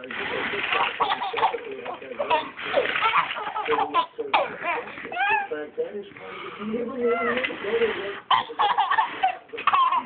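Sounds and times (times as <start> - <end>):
baby squealing: 2.2 - 5.5, 8.3 - 10.0.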